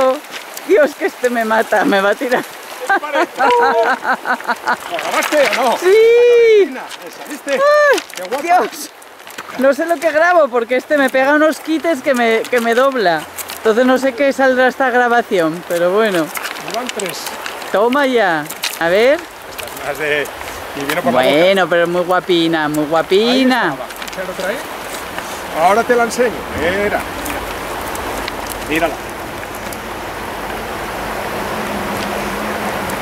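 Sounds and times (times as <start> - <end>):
river flowing over stones: 0.0 - 33.0
man speaking: 0.7 - 4.0, 4.9 - 8.9, 19.6 - 24.6, 25.5 - 27.2, 28.7 - 29.0
woman laughing: 1.7 - 5.0.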